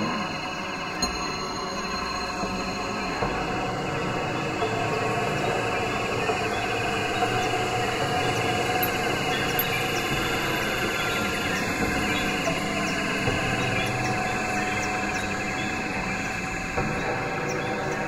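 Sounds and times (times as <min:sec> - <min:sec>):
experimental electronic music: 0:00.0 - 0:01.2.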